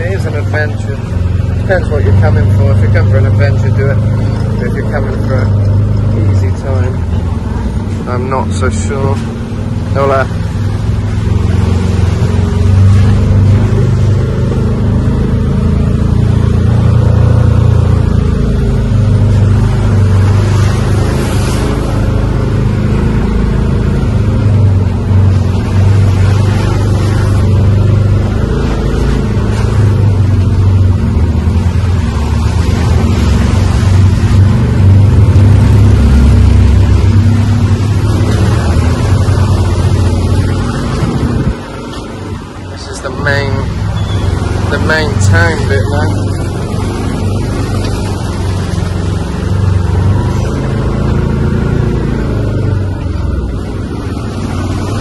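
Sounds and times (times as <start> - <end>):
utility vehicle engine droning: 0.0 - 55.0.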